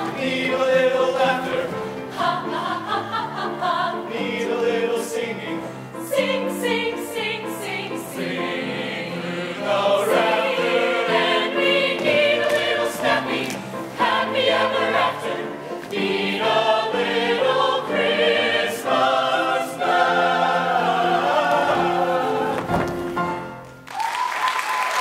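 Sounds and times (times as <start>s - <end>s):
choir singing in harmony: 0.0s - 22.9s.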